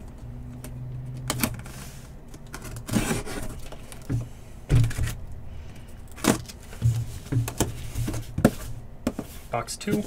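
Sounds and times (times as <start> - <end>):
cardboard scraping rustle: 1.6 - 3.8.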